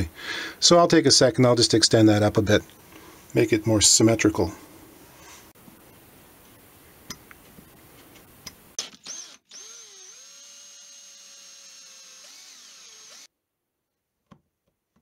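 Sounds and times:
electric drill whining: 0:08.8 - 0:13.3.

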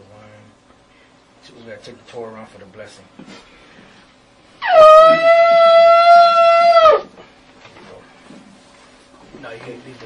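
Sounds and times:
shofar blast: 0:04.6 - 0:07.1.

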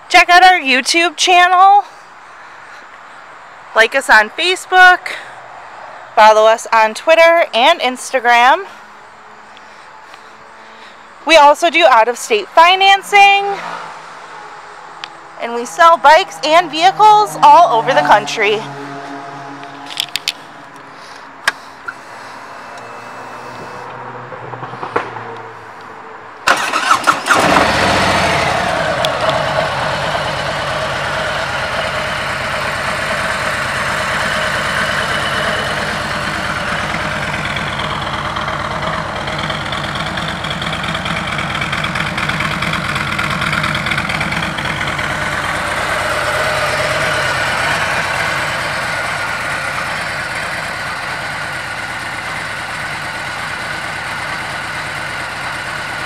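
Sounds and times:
motorcycle engine starting and idling: 0:15.0 - 0:25.3, 0:26.4 - 0:56.0.

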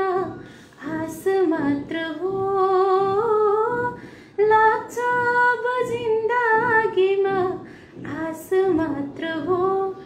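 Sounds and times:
woman singing a cappella: 0:00.0 - 0:10.0.

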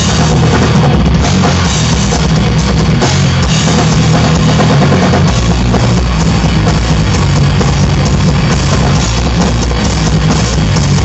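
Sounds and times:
bass guitar: 0:00.0 - 0:11.0
distorted electric guitar: 0:00.0 - 0:11.0
drum kit: 0:00.0 - 0:11.0.

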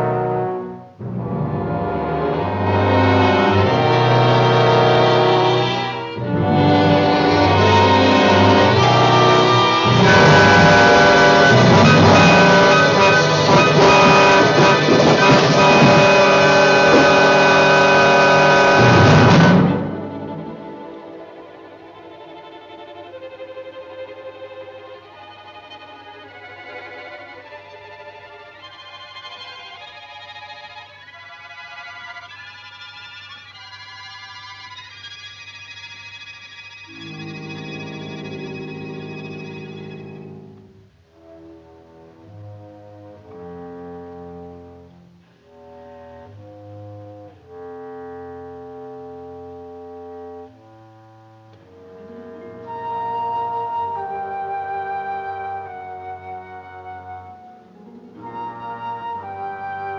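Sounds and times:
orchestral music with brass: 0:00.0 - 0:33.0, 0:36.9 - 0:59.9.

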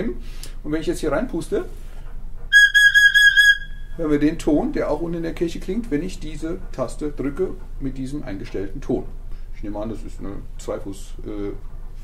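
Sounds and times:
organ pipe whistle-like note: 0:02.5 - 0:04.0.

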